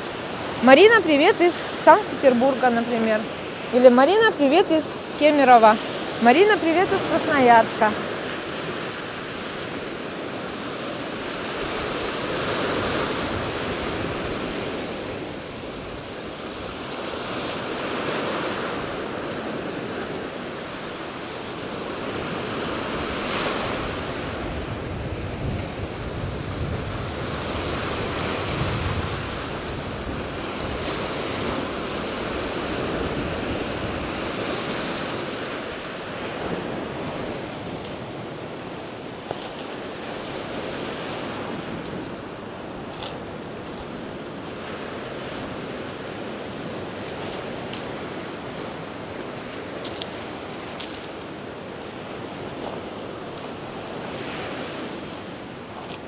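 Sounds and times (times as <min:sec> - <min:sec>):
wind buffeting microphone: 0:21.7 - 0:55.9.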